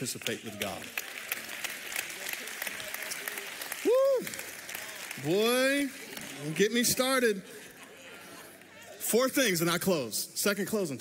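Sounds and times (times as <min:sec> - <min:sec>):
congregation applauding: 0:00.0 - 0:09.5.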